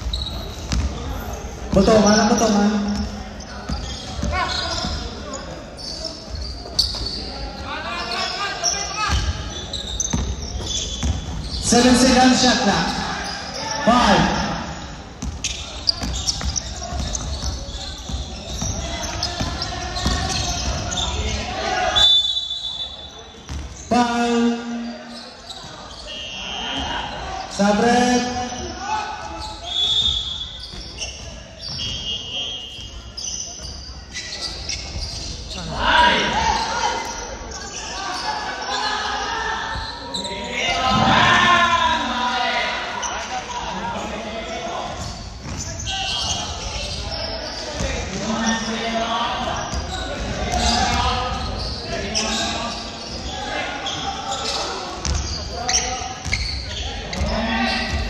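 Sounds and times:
players' voices echoing: 0.0s - 58.0s.

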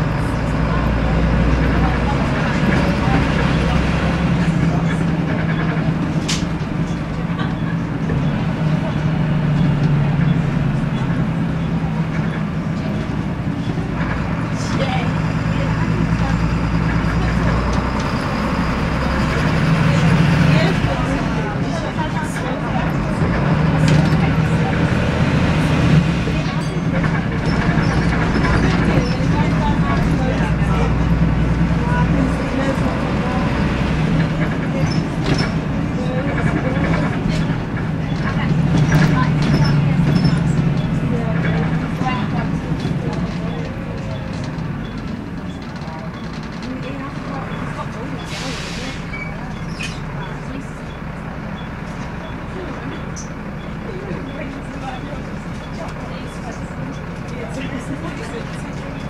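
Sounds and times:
diesel bus engine: 0.0s - 59.0s.

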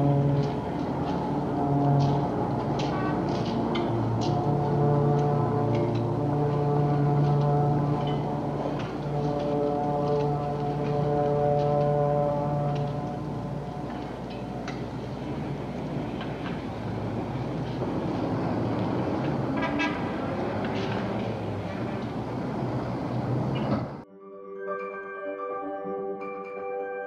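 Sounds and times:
background rumble: 0.0s - 24.0s
distant low horn: 0.0s - 24.0s.

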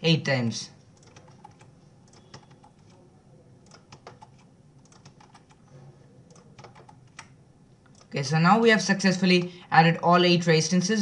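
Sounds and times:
keyboard and mouse clicks: 1.0s - 3.0s, 3.6s - 5.7s, 6.3s - 8.2s.

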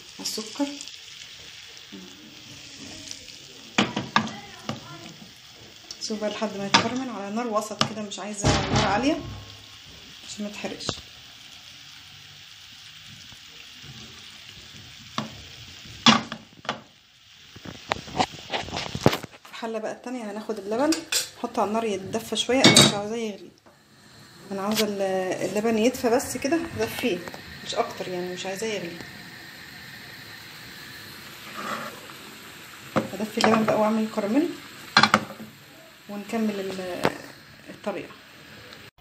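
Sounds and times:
gas stove burner hissing: 0.0s - 39.0s
sugar bubbling and sizzling: 0.0s - 39.0s.

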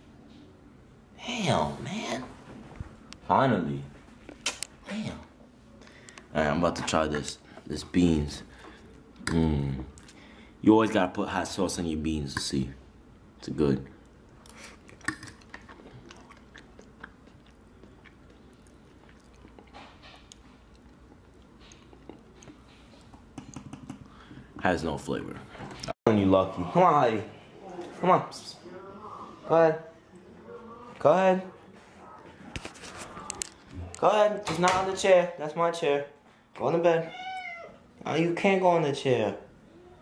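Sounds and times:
person chewing: 14.0s - 24.2s.

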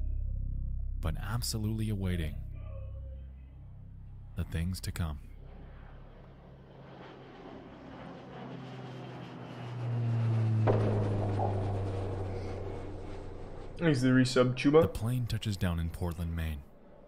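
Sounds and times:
low steady hum: 0.0s - 17.0s
jet engine rushing: 5.2s - 17.0s.

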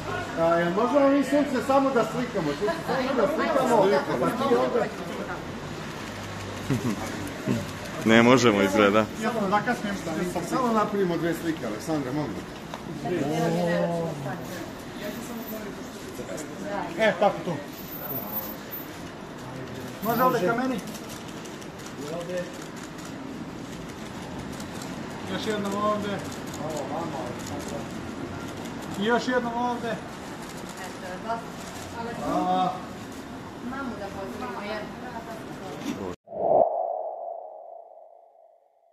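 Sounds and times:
background noise: 0.0s - 36.6s
street sound: 0.0s - 38.9s.

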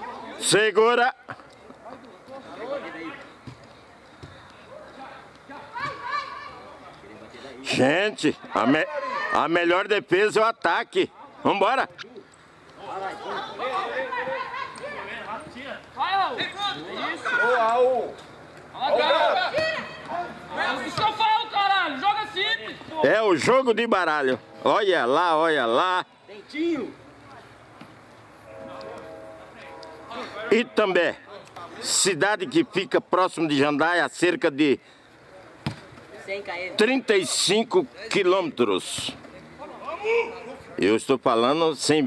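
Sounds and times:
voices talking and calling out: 0.0s - 42.0s
distant players shouting: 4.6s - 7.0s, 8.3s - 9.9s, 12.7s - 27.6s.

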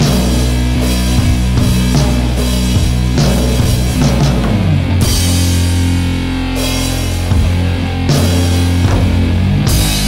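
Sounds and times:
heavy rock band playing: 0.0s - 10.0s.

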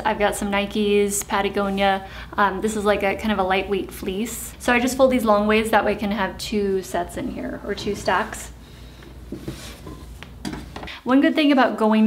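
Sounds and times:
soft fabric rustling: 7.7s - 10.8s.

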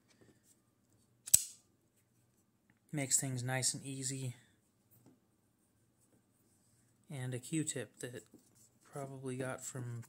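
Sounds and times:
folding knife blade clicking open: 1.3s - 1.6s.

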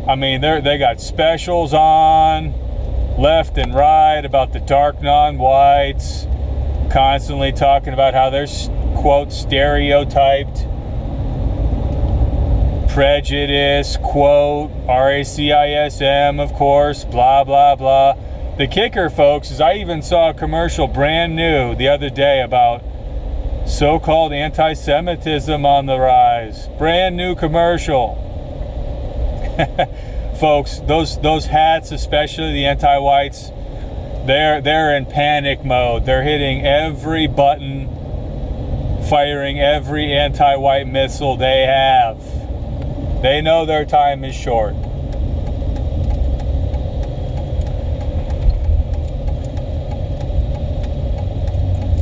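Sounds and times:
faint steady hum: 0.0s - 52.0s
low rumble: 0.0s - 52.0s
man chuckling: 29.4s - 30.1s.

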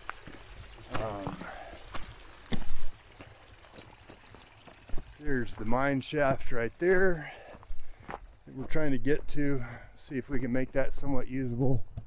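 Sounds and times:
footsteps on gravel trail: 0.0s - 11.8s.

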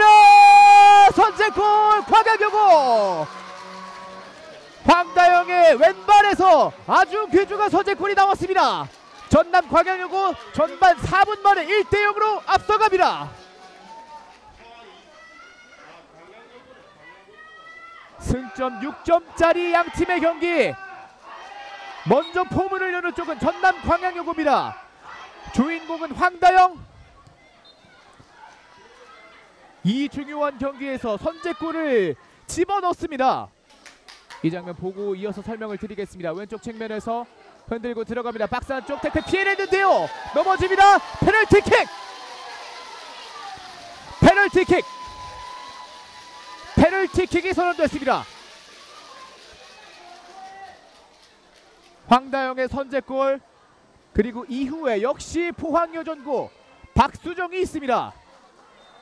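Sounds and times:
distant footballers shouting: 0.0s - 13.6s, 38.3s - 48.4s.

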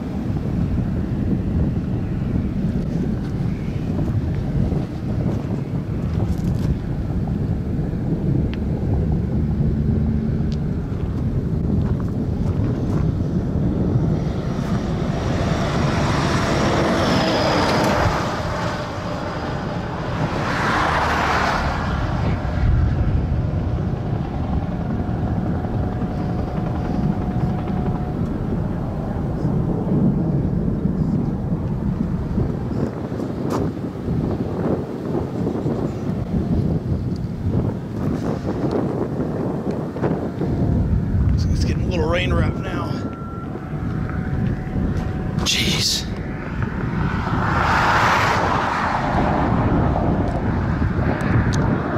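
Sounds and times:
wind buffeting microphone: 0.0s - 51.9s.

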